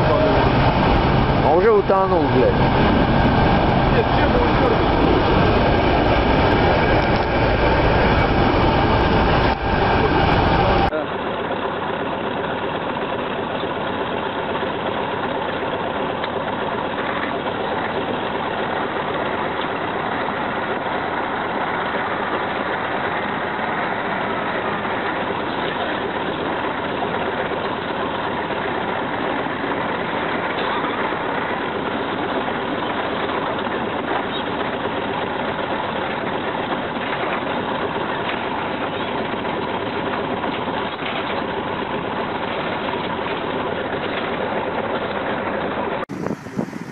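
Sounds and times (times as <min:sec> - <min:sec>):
heavy diesel engine running: 0:00.0 - 0:46.9.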